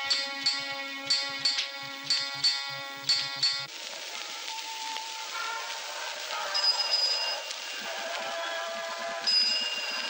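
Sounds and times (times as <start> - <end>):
film soundtrack music: 0.0 - 8.0.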